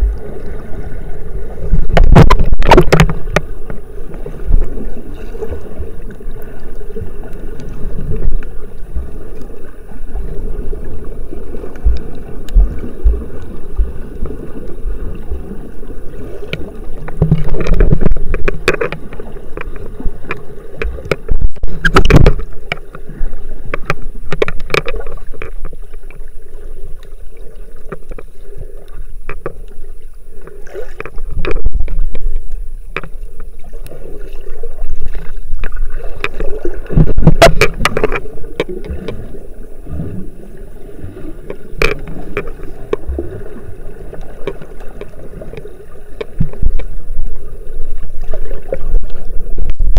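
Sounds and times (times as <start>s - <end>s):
low underwater churning rumble: 0.0s - 49.9s
splashing and bubbling: 0.0s - 49.9s
underwater clicks and knocks: 1.7s - 4.7s, 11.7s - 14.4s, 16.5s - 26.3s, 27.8s - 28.3s, 29.2s - 29.8s, 30.4s - 34.0s, 34.8s - 39.3s, 41.5s - 43.3s, 44.1s - 47.4s.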